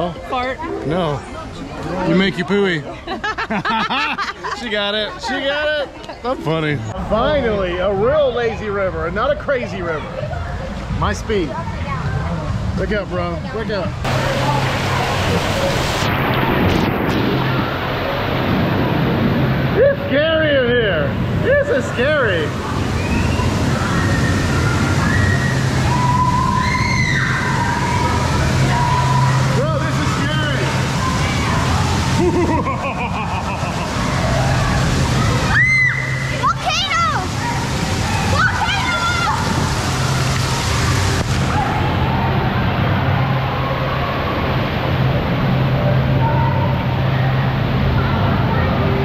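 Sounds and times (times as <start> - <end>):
water sloshing and rushing: 0.0 - 49.0.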